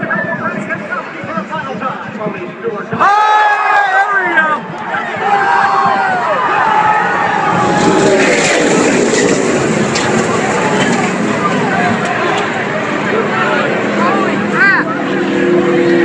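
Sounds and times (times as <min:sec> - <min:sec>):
spectators shouting: 0:03.0 - 0:15.2
race car engines at full speed: 0:04.1 - 0:16.0.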